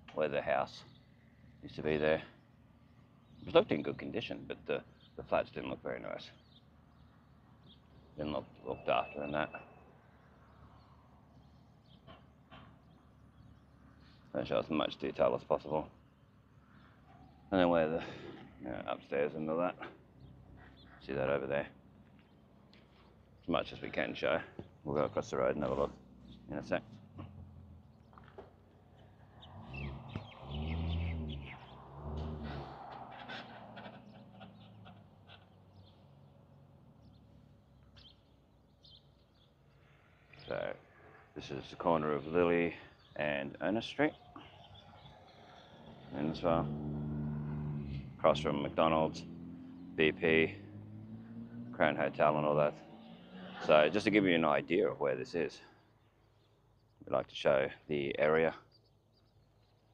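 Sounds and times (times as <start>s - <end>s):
small birds chirping: 0.0s - 59.9s.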